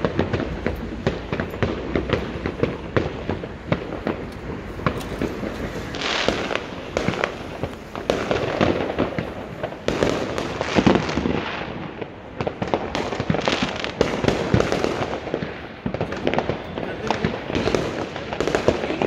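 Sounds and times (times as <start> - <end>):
fireworks bangs and pops: 0.0 - 19.0.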